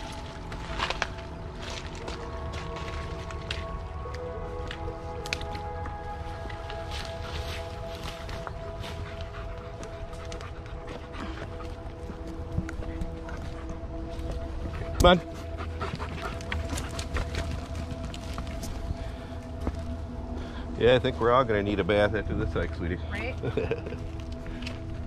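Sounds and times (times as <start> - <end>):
large dog panting: 8.2 - 18.6.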